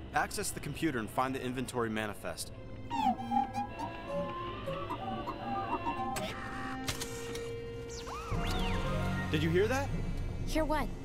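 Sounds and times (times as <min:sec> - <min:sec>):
robot electronic beeps and chirps: 0:02.9 - 0:06.6.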